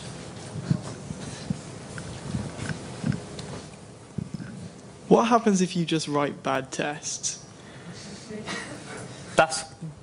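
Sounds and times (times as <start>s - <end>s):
room hum: 0.0s - 10.0s
microphone handling thumps: 0.5s - 3.6s
faint breathing: 7.6s - 8.4s.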